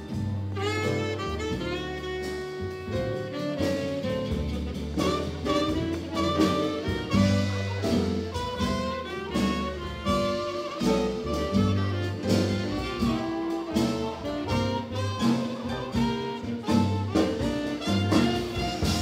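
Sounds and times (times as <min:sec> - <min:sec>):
jazz band playing slow blues: 0:00.0 - 0:19.0.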